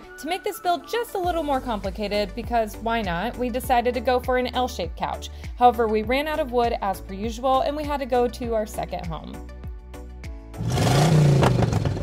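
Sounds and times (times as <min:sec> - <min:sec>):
background music: 0:00.0 - 0:12.0
engine revving vroom: 0:10.6 - 0:12.0.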